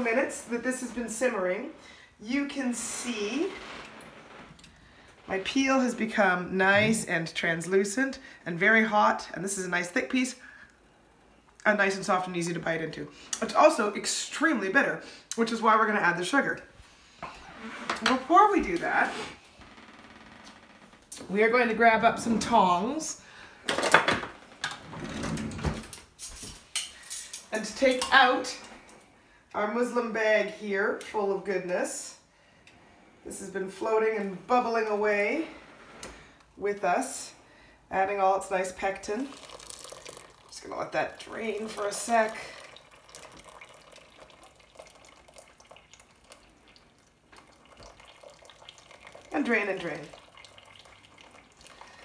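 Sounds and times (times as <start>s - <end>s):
liquid dripping into pot: 39.3s - 52.0s.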